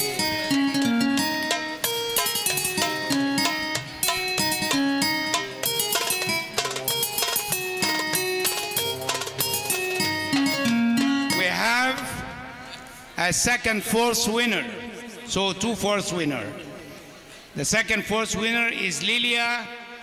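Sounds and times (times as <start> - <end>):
hand drums: 0.0 - 12.2
plucked-string melody: 0.0 - 12.7.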